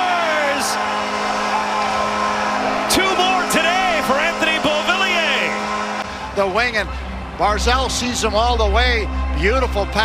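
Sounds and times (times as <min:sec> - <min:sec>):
arena goal horn: 0:00.0 - 0:07.5
celebration music: 0:00.0 - 0:10.0.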